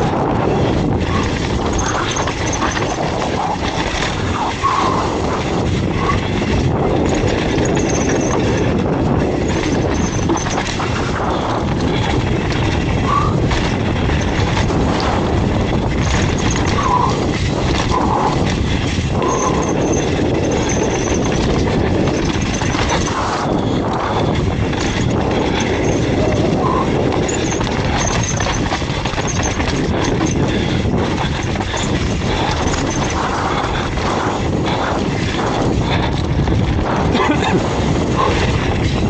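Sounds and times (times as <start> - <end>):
bike rattling and knocking: 0.0 - 39.0
bike tyres rumbling on dirt: 0.0 - 39.0.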